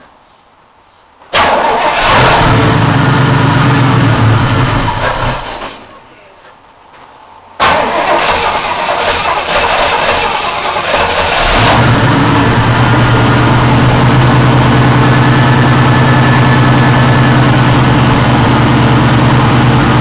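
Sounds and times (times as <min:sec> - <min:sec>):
car engine starting and idling: 0:01.3 - 0:05.9, 0:07.6 - 0:20.0.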